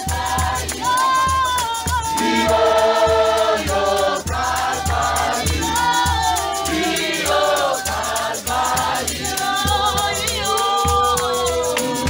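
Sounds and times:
congregation singing in harmony: 0.0 - 12.0
steady low beat: 1.4 - 9.9.

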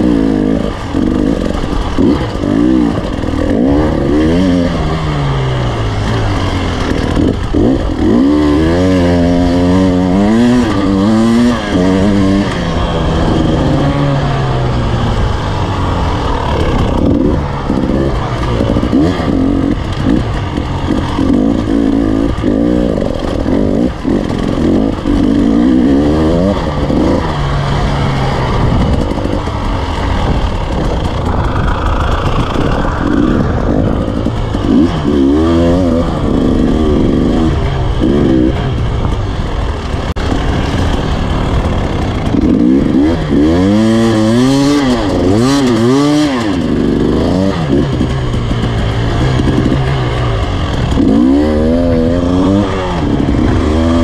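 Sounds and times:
motorcycle engine revving: 0.0 - 54.0.

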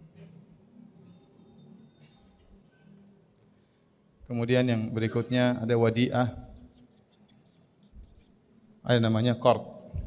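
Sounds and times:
marker pen writing on whiteboard: 6.2 - 8.4.

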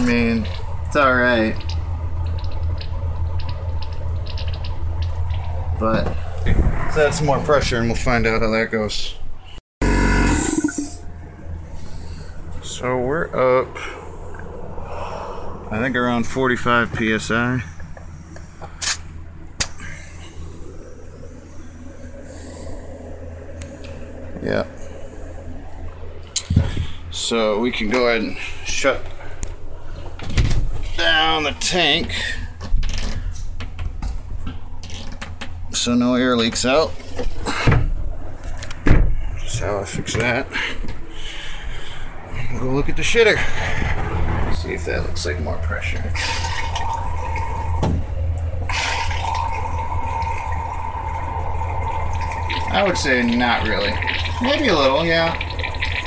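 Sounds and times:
steady low hum: 0.0 - 56.0
electric air compressor running: 9.8 - 11.0.

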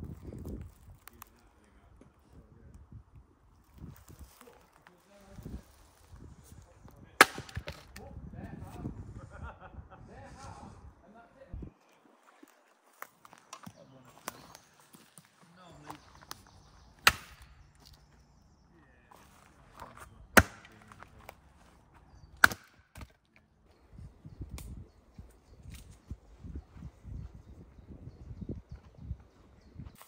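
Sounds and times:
hatchet striking firewood: 7.2 - 8.0, 16.3 - 18.0, 20.3 - 21.0, 22.4 - 23.2.

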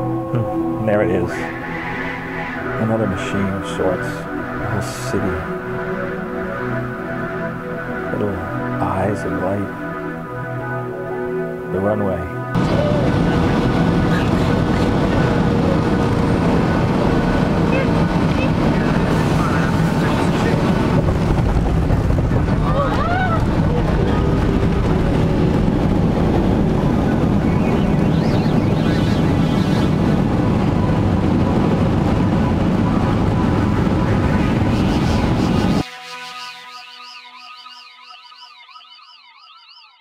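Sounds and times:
jet engines roaring: 1.0 - 9.4, 12.5 - 35.9.

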